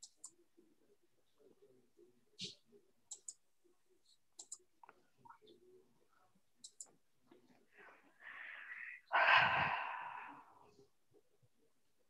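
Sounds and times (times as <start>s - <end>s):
person breathing close to microphone: 7.8s - 10.7s.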